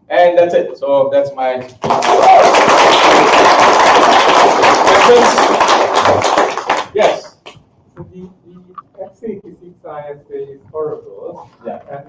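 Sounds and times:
audience applause: 1.8 - 7.2.

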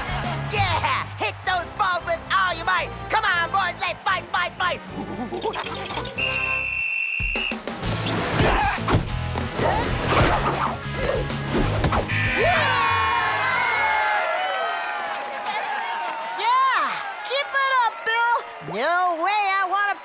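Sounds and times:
cartoon music: 4.7 - 6.6, 12.1 - 12.9
high whistle blast: 6.2 - 7.7.

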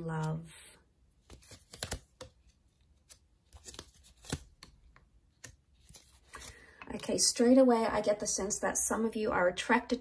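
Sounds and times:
cards clicking and flicking: 1.2 - 6.6.

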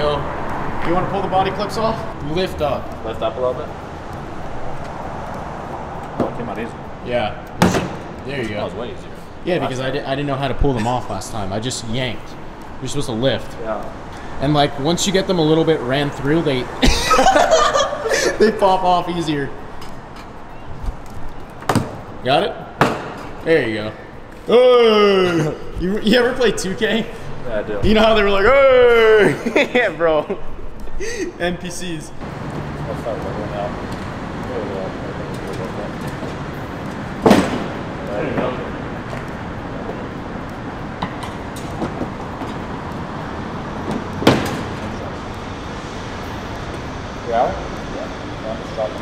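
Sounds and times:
steady background hum: 0.0 - 49.0.

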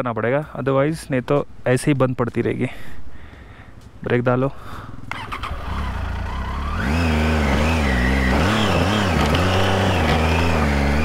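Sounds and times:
motorcycle engine revving: 5.1 - 11.0.

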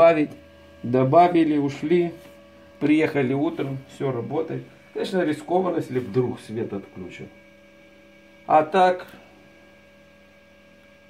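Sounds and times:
incubator humming: 0.0 - 11.0.

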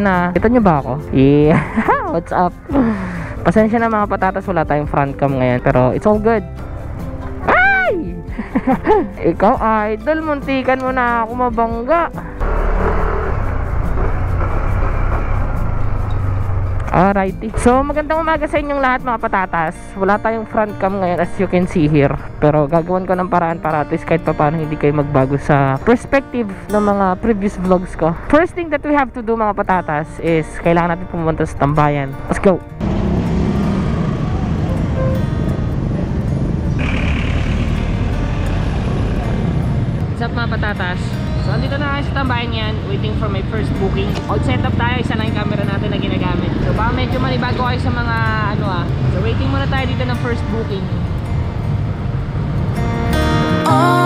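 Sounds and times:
engine rumble: 0.0 - 25.8, 32.7 - 53.0
motorcycle engine: 12.3 - 17.2, 32.8 - 41.0.

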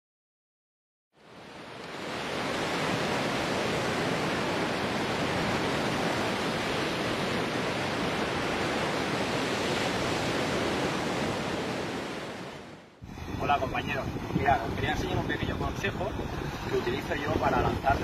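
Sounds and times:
steady rushing noise: 3.1 - 18.0.

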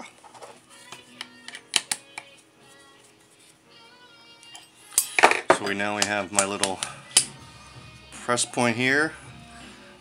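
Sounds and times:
faint music: 0.0 - 10.0.

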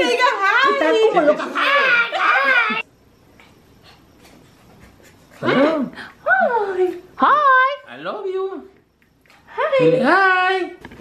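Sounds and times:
small dog panting: 3.4 - 5.6.

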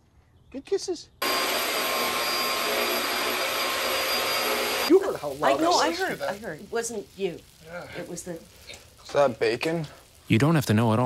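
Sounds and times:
vacuum cleaner running: 1.2 - 6.2.

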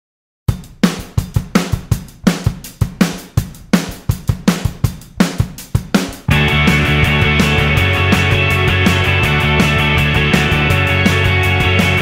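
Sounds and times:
rock drum kit beat: 0.5 - 12.0.

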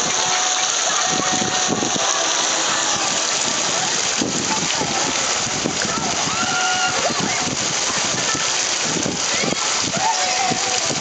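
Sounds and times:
water rushing and splashing: 0.0 - 11.0.

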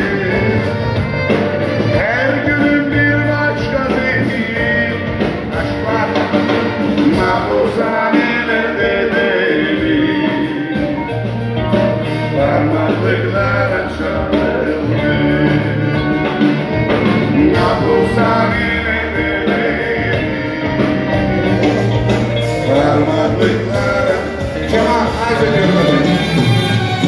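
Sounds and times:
live band music: 0.0 - 27.0
man singing: 0.0 - 27.0.

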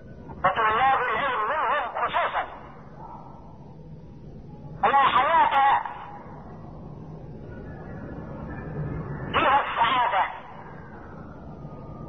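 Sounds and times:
man speaking over telephone: 0.4 - 2.8, 4.8 - 6.2, 9.4 - 10.5.

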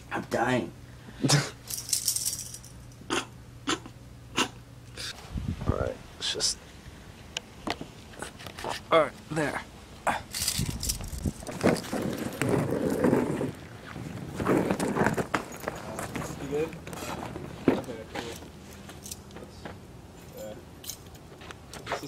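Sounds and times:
wheeled suitcase rolling on concrete: 10.7 - 18.2.

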